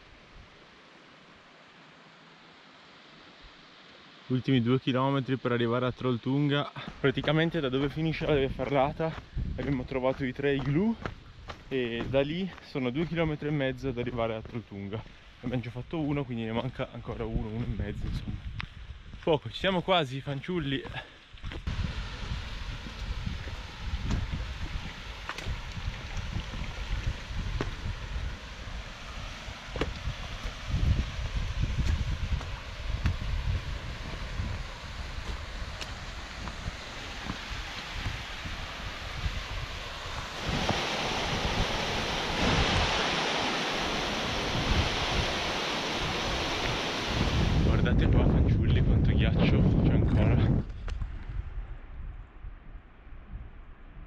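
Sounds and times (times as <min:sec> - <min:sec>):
wind buffeting microphone: 0:07.2 - 0:12.4, 0:17.0 - 0:19.2, 0:21.4 - 0:54.0
steady hiss: 0:18.7 - 0:47.7
rushing hiss: 0:34.2 - 0:47.7.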